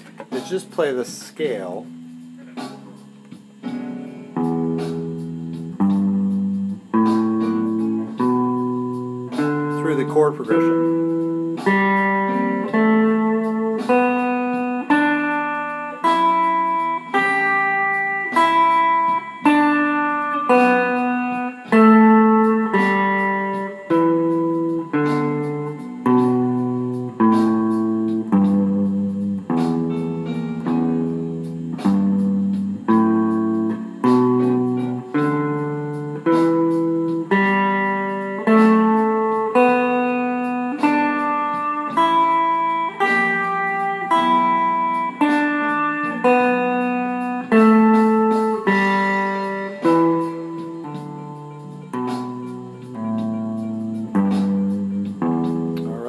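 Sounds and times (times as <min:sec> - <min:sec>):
electric guitar plucked notes: 0:00.0 - 0:56.0.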